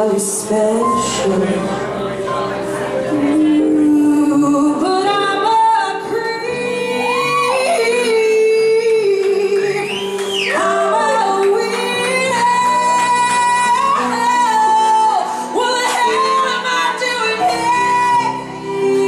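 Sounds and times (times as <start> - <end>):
keyboard and bass accompaniment: 0.0 - 19.0
woman singing wordless high notes: 2.4 - 19.0.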